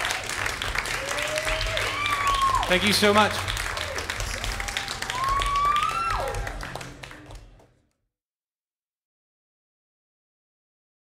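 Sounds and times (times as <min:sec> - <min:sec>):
long cheer: 0:00.0 - 0:07.0
audience clapping: 0:00.0 - 0:08.0.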